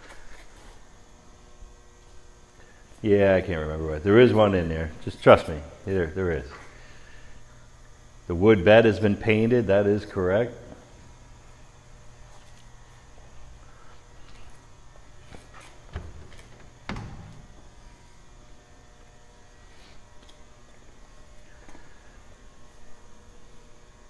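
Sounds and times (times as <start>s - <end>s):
low steady hum: 0.0s - 24.0s.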